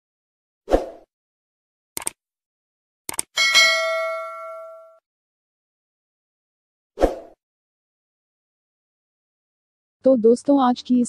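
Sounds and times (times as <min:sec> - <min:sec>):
notification bell ding: 0:03.4 - 0:05.0.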